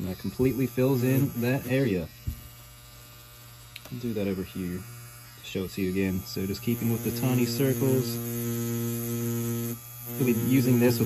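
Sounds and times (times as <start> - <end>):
tattoo machine humming: 0.0 - 11.0.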